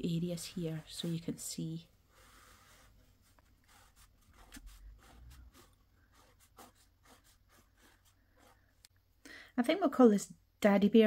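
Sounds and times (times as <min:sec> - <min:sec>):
pencil scratching on paper: 0:00.2 - 0:08.9.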